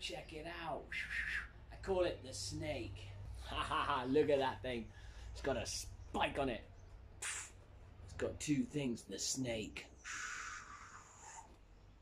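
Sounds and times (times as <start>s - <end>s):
man hissing like a snake: 7.2s - 7.6s, 10.0s - 11.5s.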